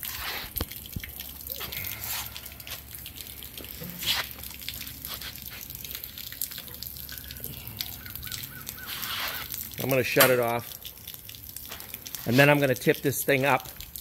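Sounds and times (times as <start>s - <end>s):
water dripping: 0.0s - 14.0s
water jet spattering on metal: 8.6s - 14.0s.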